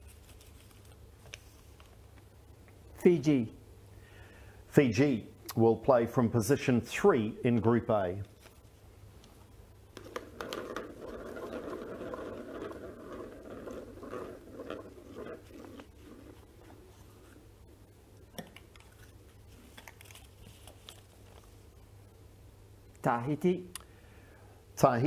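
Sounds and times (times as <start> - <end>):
paper slip crinkling: 0.0 - 2.0, 8.2 - 17.5, 18.6 - 21.8
plastic balls rattling in a bowl: 9.9 - 17.4.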